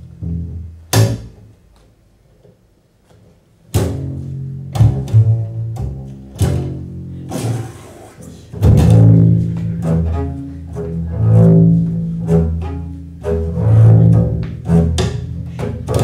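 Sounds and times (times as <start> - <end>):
double bass notes: 0.0 - 16.0.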